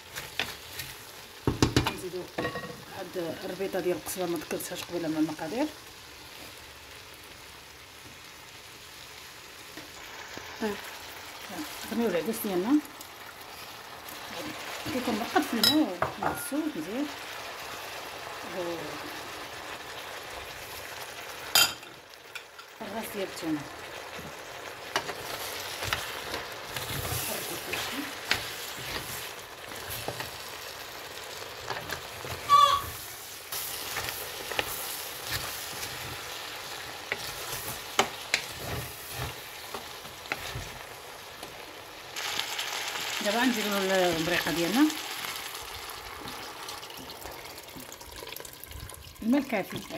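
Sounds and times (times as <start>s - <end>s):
food sizzling in oil: 0.0s - 49.9s
brief squeak: 32.4s - 32.9s.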